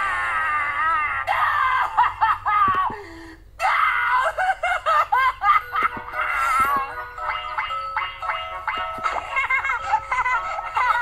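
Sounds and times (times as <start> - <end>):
cartoon character screaming: 0.0 - 1.9.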